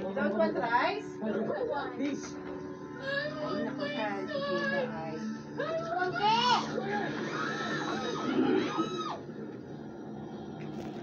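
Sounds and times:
steady low hum: 0.0s - 11.0s
child squealing: 6.3s - 9.2s.

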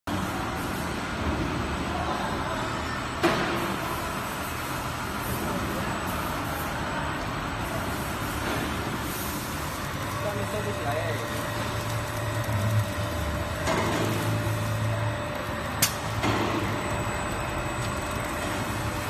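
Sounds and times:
slitting machine running: 7.6s - 19.0s.

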